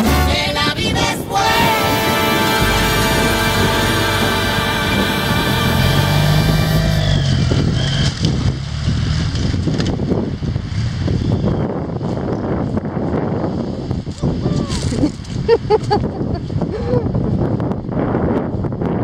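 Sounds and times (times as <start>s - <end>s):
background music: 0.0s - 7.2s
short voices: 0.0s - 7.4s
wind noise on microphone: 0.0s - 19.0s
motorcycle engine pulling away: 2.9s - 11.5s.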